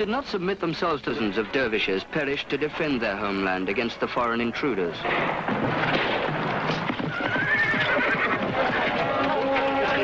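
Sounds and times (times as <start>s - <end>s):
horses galloping: 4.6s - 10.0s
horse neighing: 6.7s - 10.0s.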